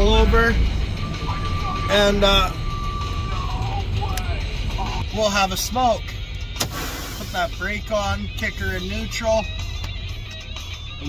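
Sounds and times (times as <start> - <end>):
truck engine rumble: 0.0 - 11.0.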